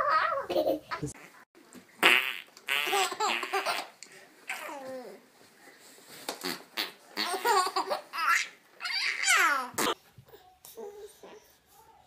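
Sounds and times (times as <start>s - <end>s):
baby laughing: 0.2s - 1.1s.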